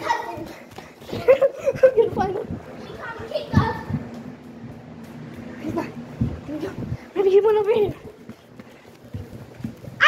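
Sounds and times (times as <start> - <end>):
children's voices playing: 0.0 - 4.5, 5.5 - 8.3.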